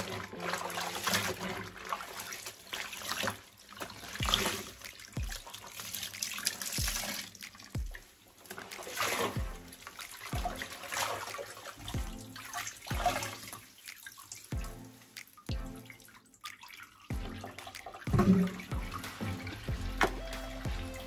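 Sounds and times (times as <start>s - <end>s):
water splashing and dripping: 0.0s - 21.0s
wet clothes being wrung out: 0.0s - 21.0s
music with deep bass beat: 4.2s - 4.5s, 5.2s - 5.5s, 6.8s - 7.1s, 7.8s - 8.0s, 9.4s - 9.8s, 10.4s - 10.7s, 11.9s - 13.3s, 14.6s - 14.9s, 15.5s - 15.9s, 17.1s - 21.0s.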